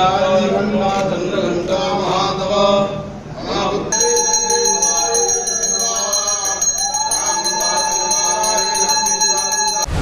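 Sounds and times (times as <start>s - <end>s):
temple bell ringing rapidly: 3.9s - 10.0s.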